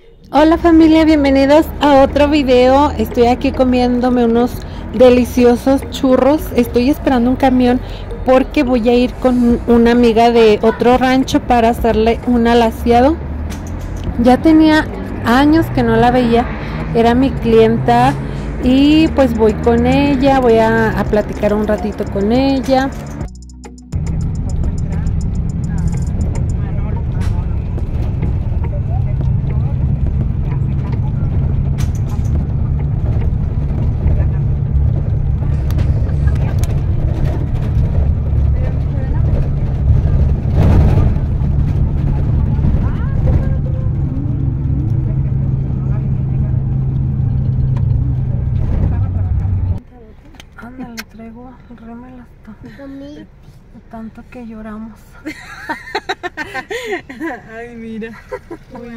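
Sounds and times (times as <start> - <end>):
bus engine drone and road rumble: 0.0 - 58.9
rattles and knocks: 24.0 - 44.1.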